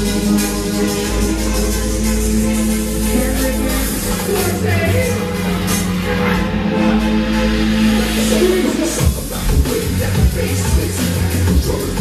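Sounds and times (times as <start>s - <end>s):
drum and bass music: 0.0s - 12.0s.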